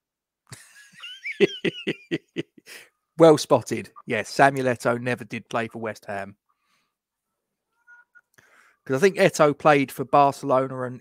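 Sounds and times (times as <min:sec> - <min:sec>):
man laughing: 0:00.5 - 0:02.8.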